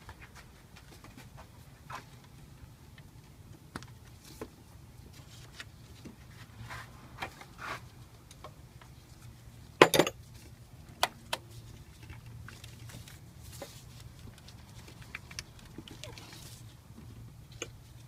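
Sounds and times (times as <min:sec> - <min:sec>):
light clicks and knocks of parts: 0:08.2 - 0:18.0.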